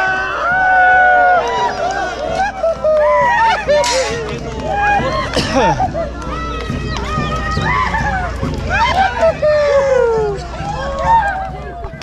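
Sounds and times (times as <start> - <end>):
crowd voices calling and talking: 0.0 - 12.0.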